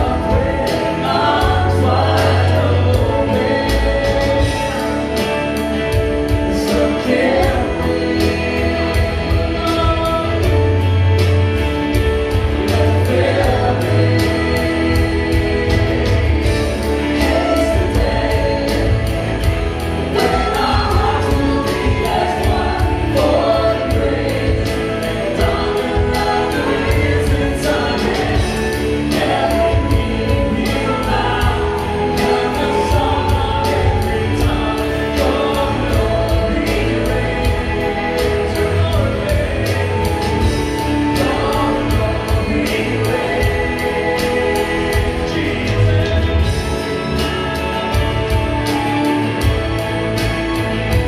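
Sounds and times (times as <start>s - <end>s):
band playing slow song: 0.0s - 51.0s
bass: 0.0s - 51.0s
electric guitar: 0.0s - 51.0s
keyboard: 0.0s - 51.0s
steady drum beat: 0.0s - 51.0s
voices singing along: 0.0s - 51.0s.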